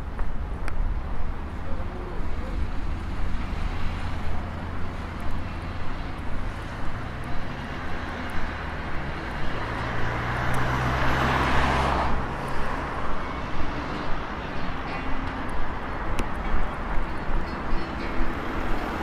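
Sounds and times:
traffic engines humming: 0.0s - 19.0s
vehicle passing close: 3.2s - 14.2s.

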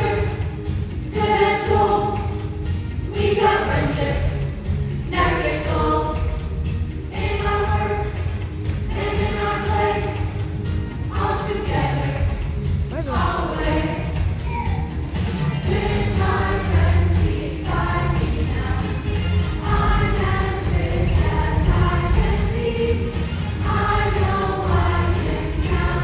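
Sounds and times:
children's chorus singing: 0.0s - 2.5s, 3.1s - 6.5s, 7.1s - 12.5s, 13.2s - 26.0s.

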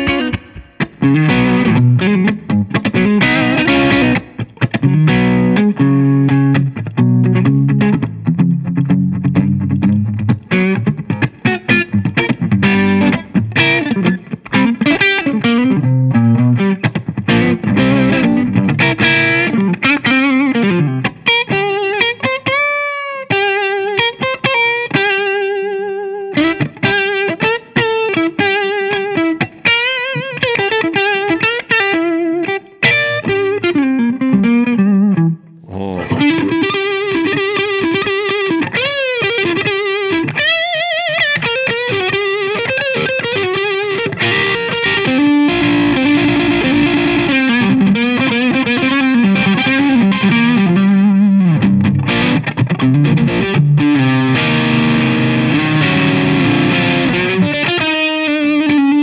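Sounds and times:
distorted electric guitar lead: 0.0s - 9.3s, 49.5s - 59.0s.

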